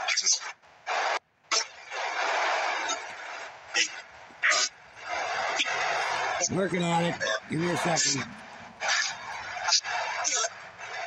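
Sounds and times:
radio static hiss: 0.0s - 1.2s, 2.1s - 10.6s.

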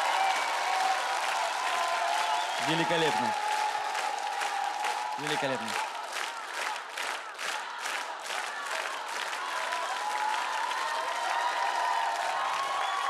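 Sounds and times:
audience applauding and cheering: 0.0s - 13.0s.

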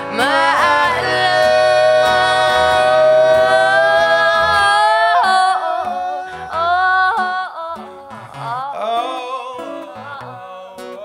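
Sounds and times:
acoustic guitar strumming: 0.0s - 11.0s
duet singing: 0.0s - 11.0s.

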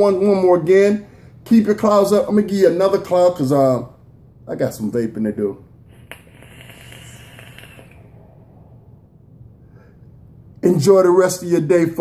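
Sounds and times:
faint hiss of vape draw: 5.9s - 8.8s.

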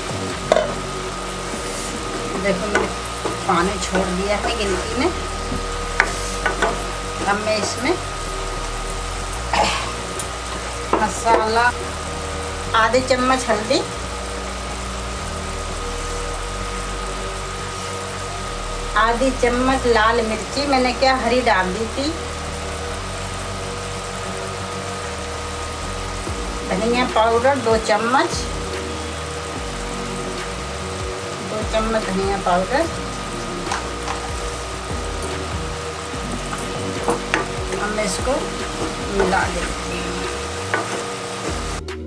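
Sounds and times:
low hum: 0.0s - 42.0s
vegetables sizzling in a pan: 0.0s - 42.0s.

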